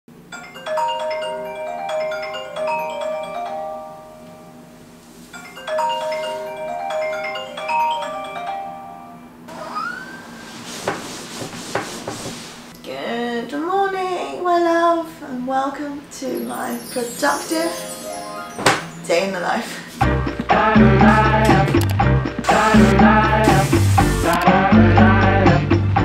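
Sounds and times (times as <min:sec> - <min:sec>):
marimba-like alarm melody: 0:00.3 - 0:04.7, 0:05.4 - 0:10.2, 0:16.4 - 0:19.1
bedding rustling: 0:09.5 - 0:12.7.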